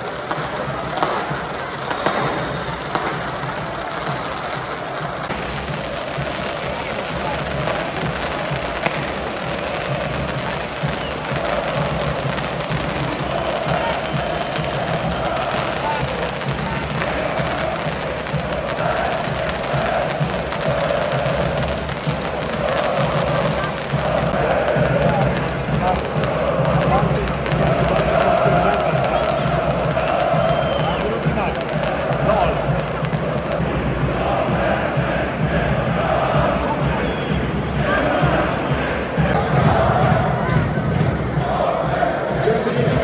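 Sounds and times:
fireworks crackling and popping: 0.0 - 34.2
crowd chanting in unison: 0.0 - 43.0.

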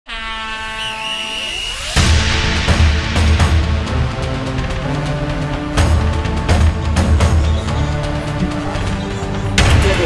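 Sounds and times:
buzzy synth horn tone rising: 0.1 - 5.7
theme music: 1.1 - 10.0.

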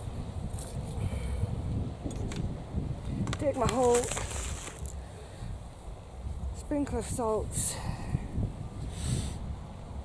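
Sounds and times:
wind buffeting microphone: 0.0 - 10.0
hands scraping soil: 3.4 - 5.0.

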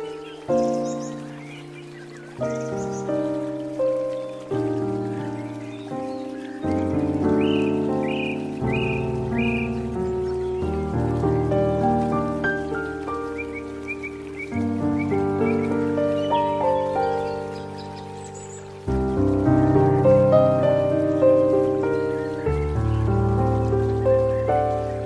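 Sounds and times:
gentle piano music: 0.0 - 25.0.

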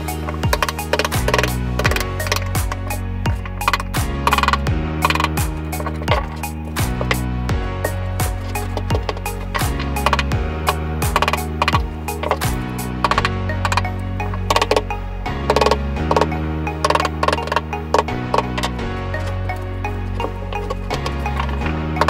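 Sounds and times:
hammer striking wood chisel: 0.0 - 14.8
background music with bass notes: 0.0 - 22.0.

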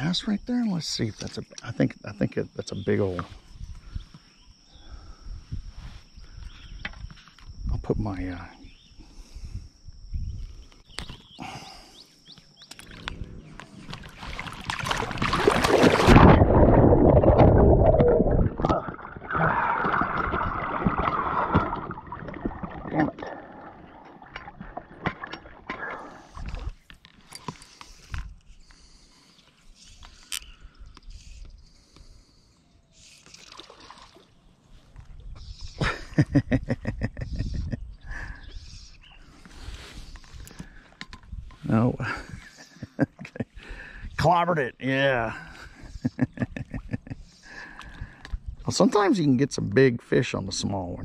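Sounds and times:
water sloshing and gurgling: 12.7 - 28.4, 33.2 - 35.4, 45.6 - 48.7
man laughing: 35.8 - 38.3, 42.0 - 43.8, 45.2 - 47.3.

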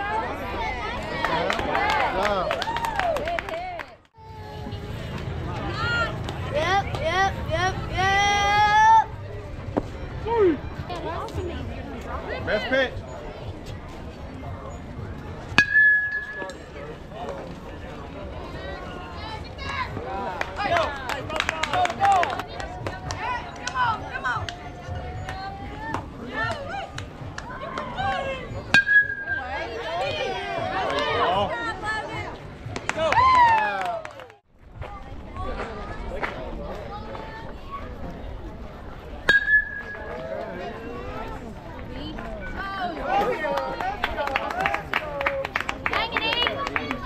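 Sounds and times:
spectators' voices: 0.0 - 47.0
metal bat hitting ball: 15.5 - 16.6, 28.7 - 29.4, 39.2 - 40.1.

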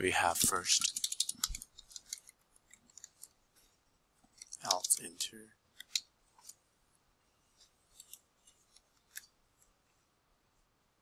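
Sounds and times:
computer keyboard typing: 0.6 - 2.3.

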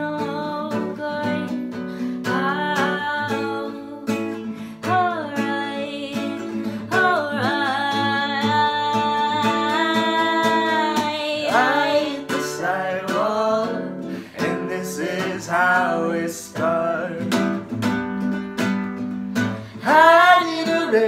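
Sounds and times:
woman singing slow melody: 0.0 - 17.1, 19.7 - 21.0
acoustic guitar strumming: 0.0 - 21.0.

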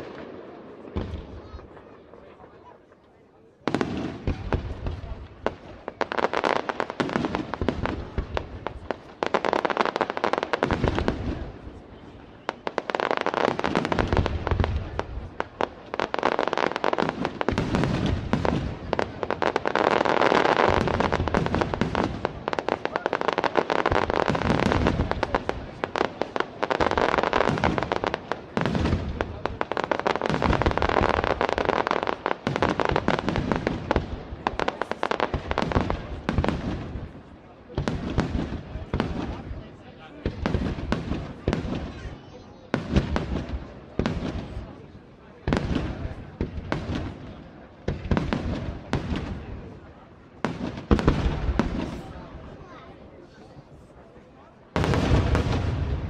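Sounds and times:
fireworks bangs and crackle: 0.0 - 56.0.

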